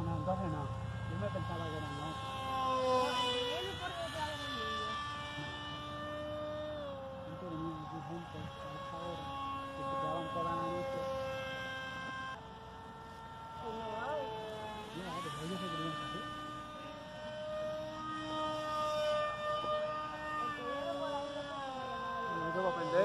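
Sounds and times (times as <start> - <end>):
electric motor whine: 0.0 - 23.0.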